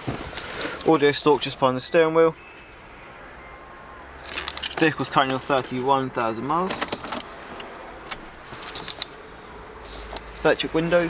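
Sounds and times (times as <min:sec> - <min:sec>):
camera handling clicks and rustles: 0:04.3 - 0:05.4, 0:06.8 - 0:09.2.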